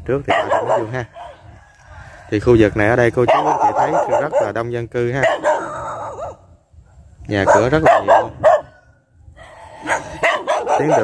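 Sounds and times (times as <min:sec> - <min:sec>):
man speaking: 0:07.3 - 0:08.4, 0:10.6 - 0:11.0.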